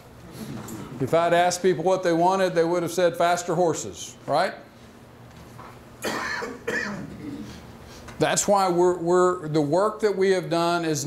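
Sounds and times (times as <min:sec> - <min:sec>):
person coughing: 0:06.0 - 0:07.7.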